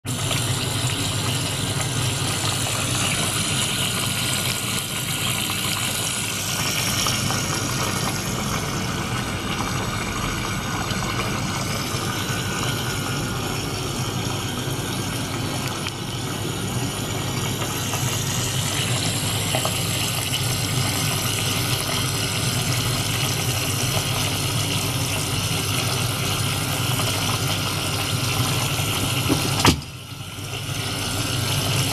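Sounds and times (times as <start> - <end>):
circulation pump humming: 0.0 - 31.9
water gushing and bubbling: 0.1 - 31.9.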